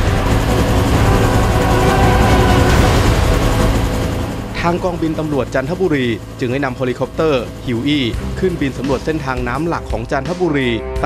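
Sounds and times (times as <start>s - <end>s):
helicopter rotor and turbine noise: 0.0s - 10.8s.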